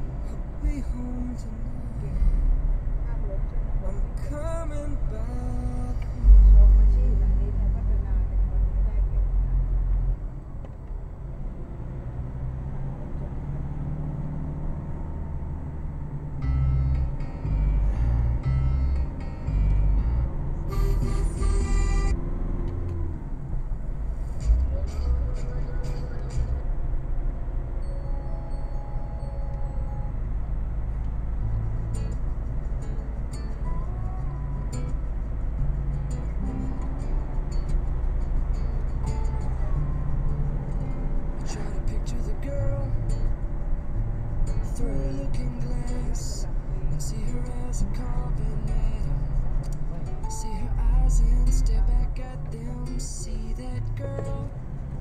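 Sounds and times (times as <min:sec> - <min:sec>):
car engine and tyres rumbling: 0:00.0 - 0:55.0
music with singing: 0:00.1 - 0:02.6, 0:03.8 - 0:09.8, 0:16.4 - 0:22.2, 0:24.2 - 0:26.8, 0:31.2 - 0:55.0.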